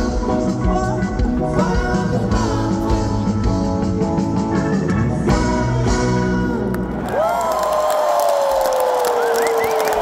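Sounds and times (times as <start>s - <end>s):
rock band held notes: 0.0s - 7.1s
crowd cheering and applauding: 6.6s - 10.0s.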